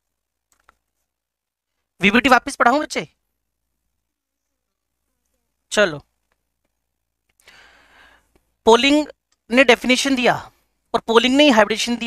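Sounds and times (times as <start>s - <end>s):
soft intake of breath: 7.4s - 8.5s.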